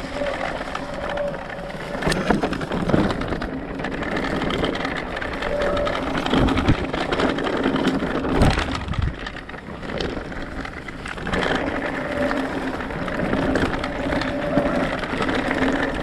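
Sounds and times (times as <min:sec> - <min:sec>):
bike rattling: 0:00.0 - 0:16.0.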